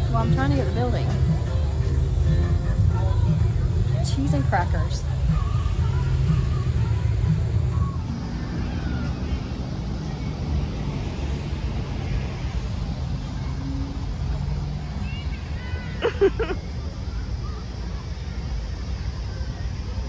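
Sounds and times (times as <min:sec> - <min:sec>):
faint distant voices: 0:00.0 - 0:20.0
low outdoor rumble: 0:00.0 - 0:20.0.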